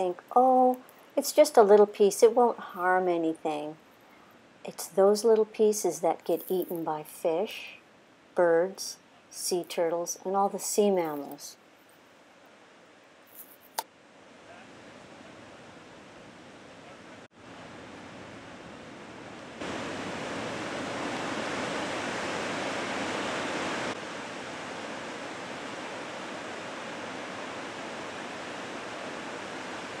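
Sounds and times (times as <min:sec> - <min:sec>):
ocean surf rushing: 0:14.3 - 0:30.0.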